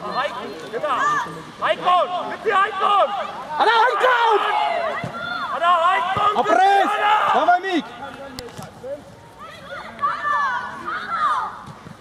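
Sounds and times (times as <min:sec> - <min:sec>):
young players shouting: 0:00.0 - 0:08.1, 0:09.2 - 0:11.6.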